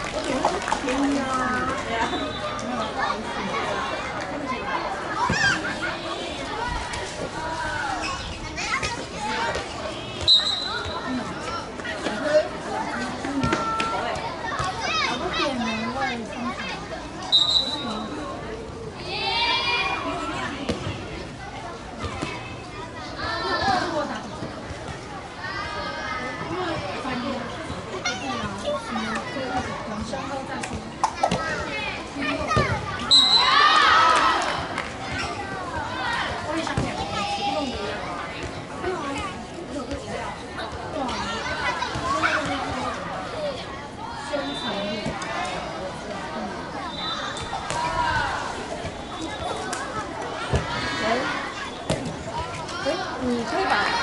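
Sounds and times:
children shouting and chattering: 0.0 - 54.0
referee's whistle blast: 10.3 - 10.9, 17.3 - 17.8, 33.1 - 33.6.

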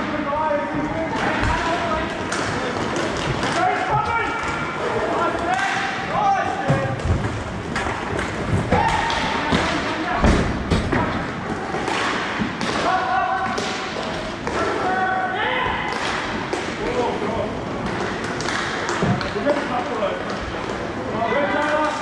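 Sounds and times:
players shouting: 8.6 - 10.2.

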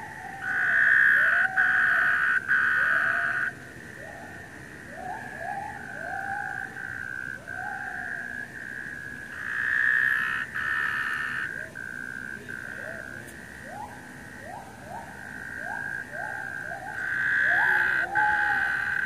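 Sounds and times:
tree frogs calling: 0.0 - 19.0
gibbon calls: 13.7 - 19.0.

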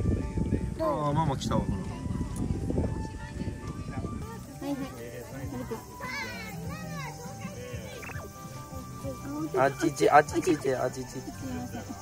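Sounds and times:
young children chattering: 2.0 - 12.0.

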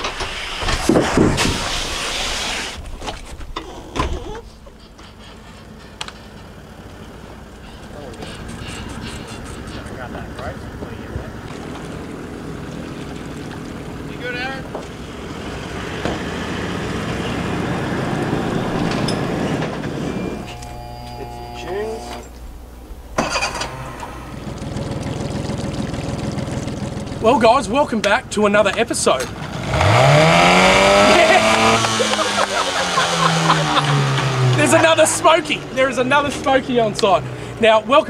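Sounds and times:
engine idling: 4.4 - 28.4
vehicle engine driving past: 15.0 - 22.2, 29.4 - 36.5.

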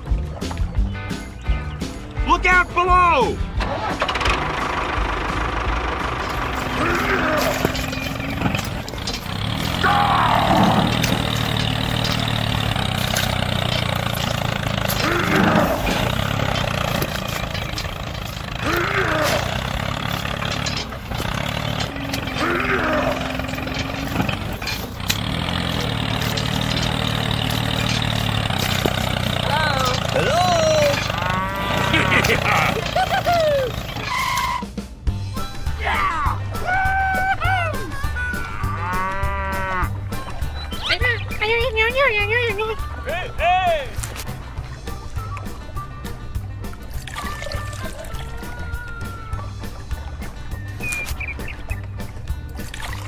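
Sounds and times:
tractor engine running: 0.0 - 35.7, 36.4 - 53.0
squeaky gliding calls: 6.5 - 34.8, 50.6 - 52.1.

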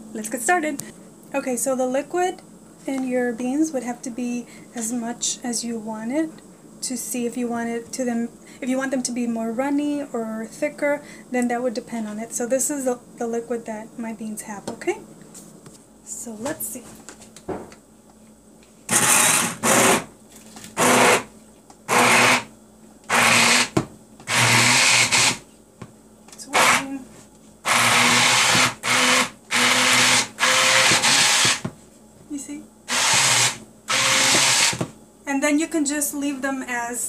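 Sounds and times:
hand blender pureeing beans: 18.9 - 20.1, 20.8 - 21.3, 21.9 - 22.5, 23.1 - 25.4, 26.5 - 26.9, 27.6 - 31.7, 32.9 - 34.9.

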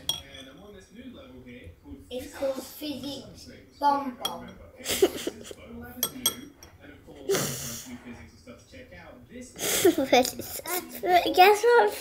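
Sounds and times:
metal spoon clinking ceramic bowl: 0.0 - 0.6, 4.2 - 4.6, 6.0 - 6.8.

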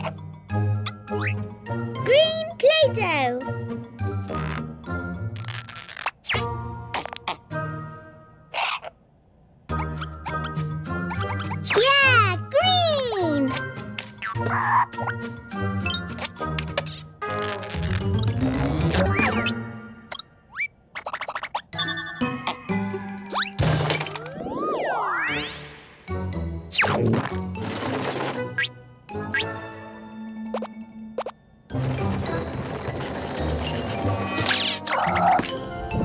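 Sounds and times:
tinkling cartoon music: 0.0 - 4.3, 21.7 - 26.6, 29.1 - 36.0
children's cartoon music: 0.0 - 8.4, 9.7 - 20.3, 21.2 - 36.0.

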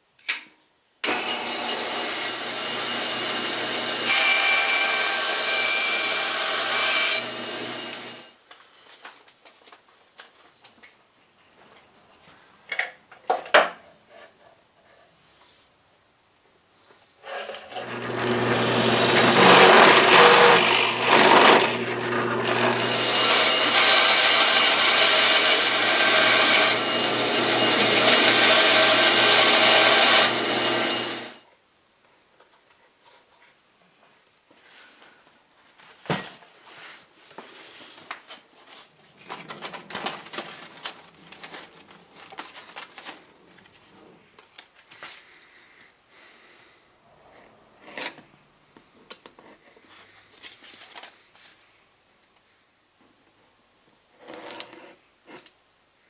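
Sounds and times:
bandsaw cutting plywood: 1.0 - 8.3, 17.7 - 31.4
power drill drilling wood: 1.0 - 8.3, 17.7 - 31.4.

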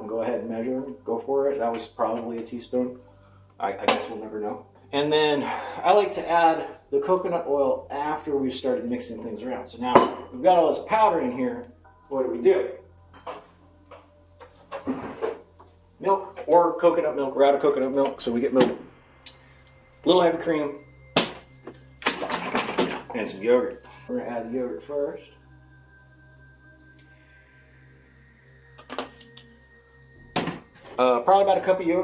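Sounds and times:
items knocking and rubbing: 14.4 - 15.6.

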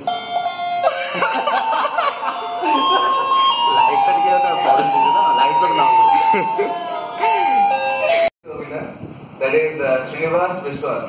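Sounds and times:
electronic doorbell chime tune: 0.0 - 8.3.

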